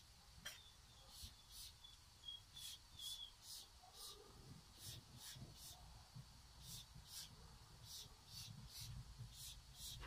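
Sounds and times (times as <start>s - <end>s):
quick hissing strokes with squeaks: 0.4s - 6.0s, 6.6s - 10.0s.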